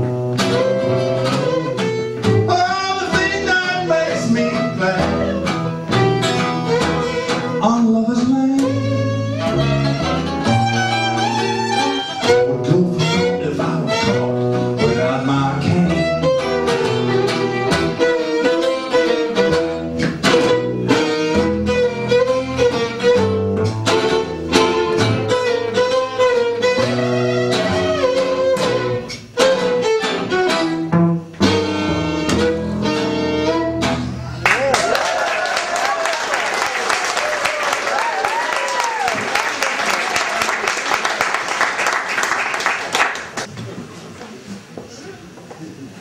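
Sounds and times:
plucked guitar chords: 0.0s - 34.4s.

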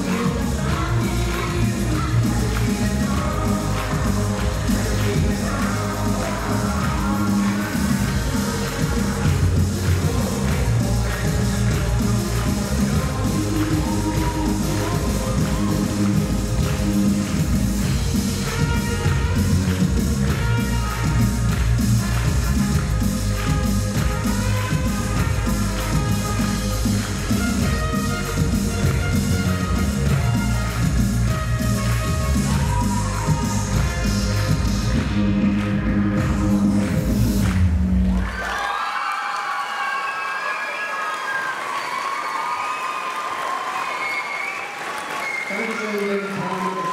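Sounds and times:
rock and roll dance music: 0.0s - 38.4s
crowd applauding and cheering: 0.0s - 46.9s.

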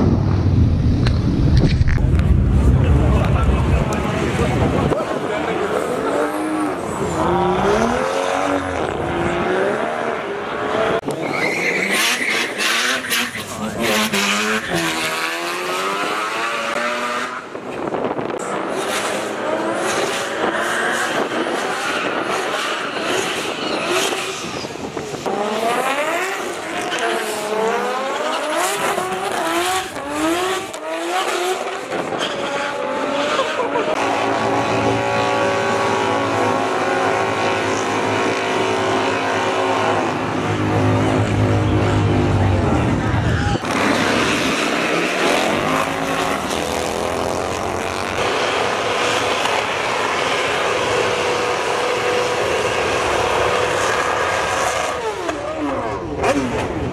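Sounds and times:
car engines revving hard: 0.0s - 56.9s.

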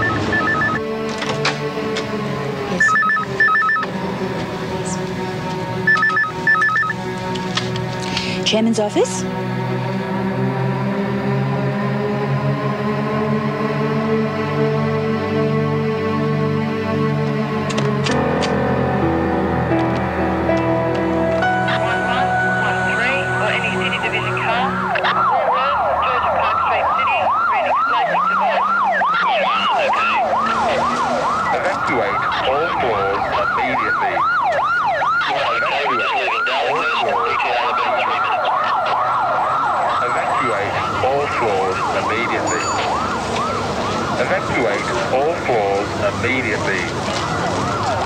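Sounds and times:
electronic alarm whooping: 0.0s - 0.8s, 2.8s - 3.9s, 5.9s - 7.0s.

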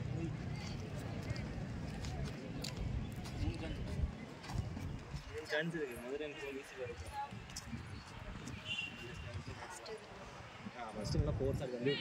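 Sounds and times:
faint voices of people: 0.0s - 12.0s.

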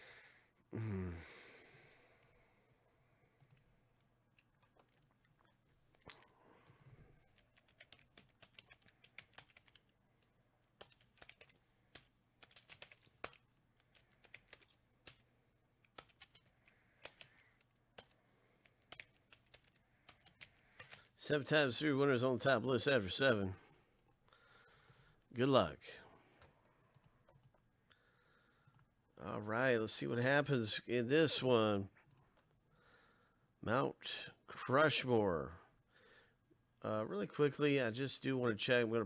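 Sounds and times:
computer keyboard typing: 6.6s - 9.9s, 10.7s - 21.2s, 26.9s - 27.6s.

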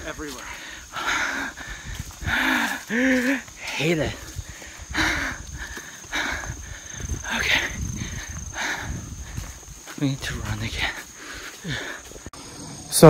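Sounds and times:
running footsteps: 0.0s - 12.4s
high insect drone: 0.0s - 13.0s
rough panting breaths: 0.4s - 12.7s
microphone handling rumble: 6.5s - 10.8s.

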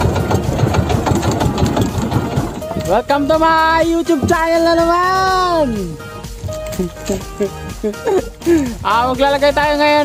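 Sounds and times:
small boat engine running: 0.0s - 8.9s.

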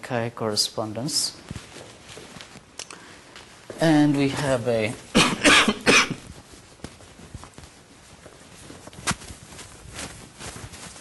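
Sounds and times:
person coughing: 5.1s - 6.2s.

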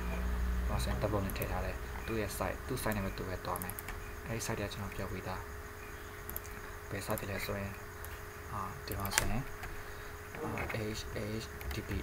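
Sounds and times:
electrical hum and hiss: 0.0s - 12.0s
faint clicks: 6.2s - 7.3s.

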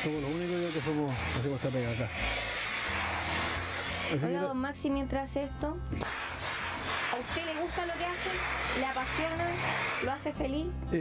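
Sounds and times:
iron rubbing on cloth: 0.0s - 4.5s, 5.9s - 10.6s.

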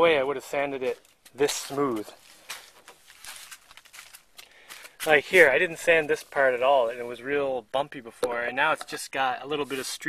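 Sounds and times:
light clicks and scuffs: 0.8s - 5.4s.

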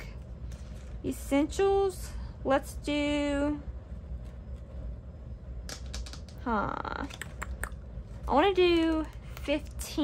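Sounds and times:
paper and plastic rustling: 0.4s - 1.1s.

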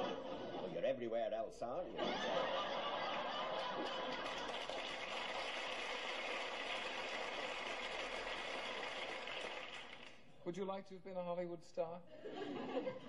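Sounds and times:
studio audience laughing: 0.0s - 0.8s, 1.9s - 5.0s, 12.1s - 13.0s
audience applauding: 3.0s - 10.2s.

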